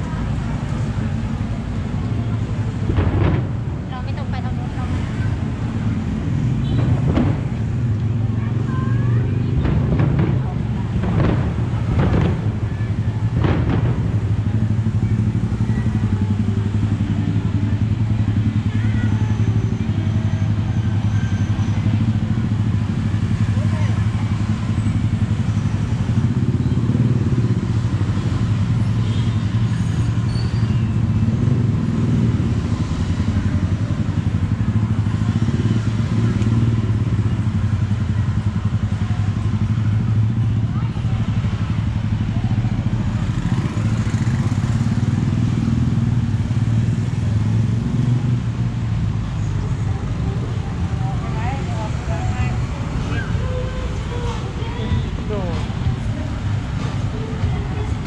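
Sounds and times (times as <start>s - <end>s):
motorbike traffic passing: 0.0s - 58.0s
people talking: 3.8s - 6.1s, 8.0s - 22.6s, 23.2s - 25.2s, 40.4s - 43.7s, 49.4s - 58.0s.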